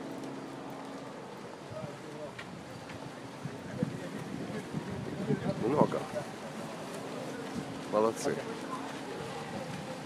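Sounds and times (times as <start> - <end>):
faint voices: 0.0 - 10.0
street noise hiss: 0.0 - 10.0
wind buffeting microphone: 1.6 - 10.0.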